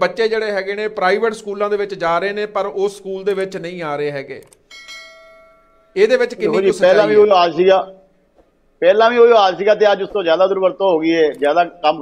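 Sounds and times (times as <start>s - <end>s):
bell-like notification chime: 4.7s - 6.1s.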